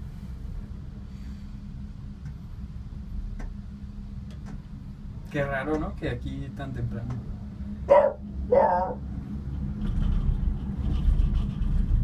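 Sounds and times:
gondola cabin rumbling and rattling: 0:00.0 - 0:12.0
steady low hum: 0:00.0 - 0:12.0.

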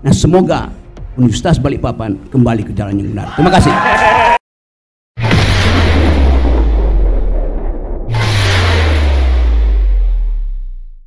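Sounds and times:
deep cinematic boom: 0:05.2 - 0:11.0.

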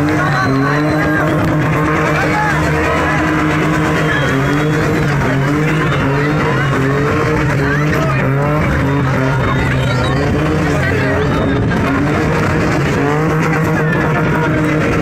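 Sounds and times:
car engine revving high: 0:00.0 - 0:15.0
crowd shouting and cheering: 0:00.0 - 0:15.0
tyres skidding on tarmac: 0:00.0 - 0:15.0.

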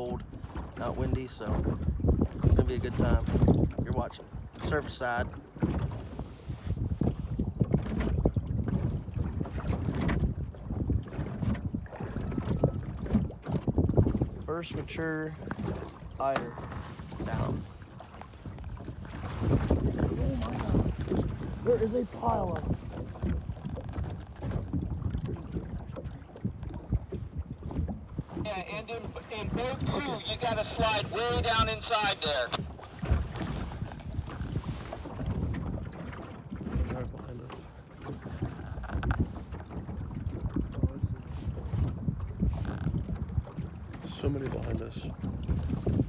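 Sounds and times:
waves lapping against boat hull: 0:00.0 - 0:46.0
wind buffeting microphone: 0:00.0 - 0:46.0.

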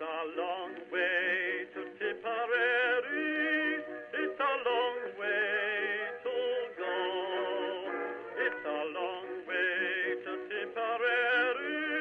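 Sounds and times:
music: 0:00.0 - 0:12.0.

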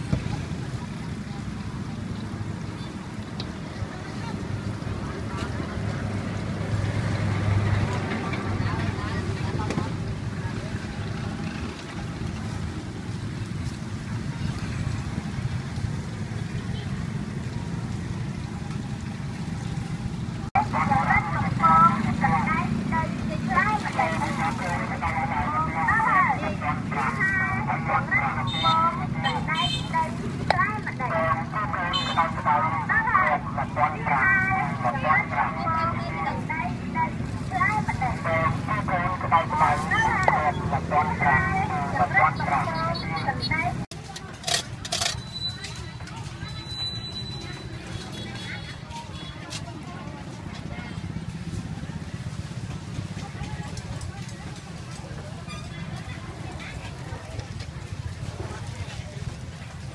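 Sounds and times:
people talking: 0:03.6 - 0:12.1, 0:20.5 - 0:52.1, 0:52.7 - 0:59.9.

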